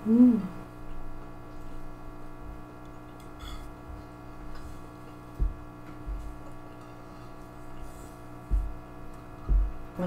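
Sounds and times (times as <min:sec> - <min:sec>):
woman humming mmm: 0:00.0 - 0:00.8
steady electrical hum: 0:00.0 - 0:10.0
eating and utensil sounds: 0:00.9 - 0:10.0.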